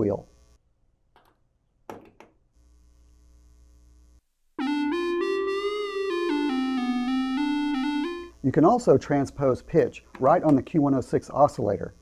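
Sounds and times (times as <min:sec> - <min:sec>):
buzzy synthesizer tone: 0:04.6 - 0:08.6.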